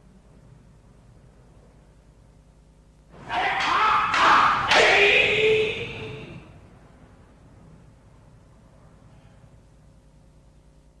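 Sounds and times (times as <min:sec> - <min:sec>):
person shouting kiai: 0:03.2 - 0:06.4
wooden swords clacking: 0:03.3 - 0:05.2.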